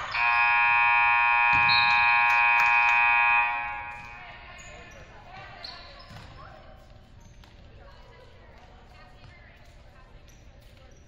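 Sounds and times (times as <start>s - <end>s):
scoreboard horn buzzing: 0.0s - 4.2s.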